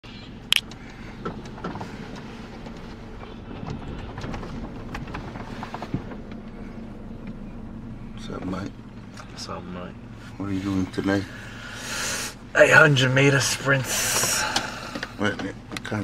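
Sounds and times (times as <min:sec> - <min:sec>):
car engine and road noise: 0:00.0 - 0:16.0.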